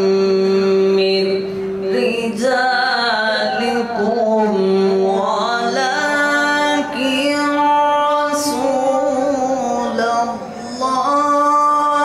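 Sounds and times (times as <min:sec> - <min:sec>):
man reciting in melodic chant: 0:00.0 - 0:12.0.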